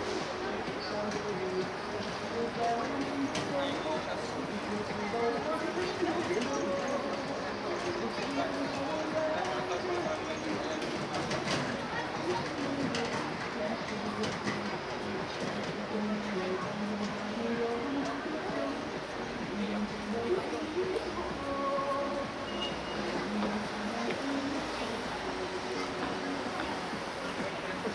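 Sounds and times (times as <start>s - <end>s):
passersby talking indistinctly: 0.0s - 27.9s
traffic noise: 0.0s - 27.9s.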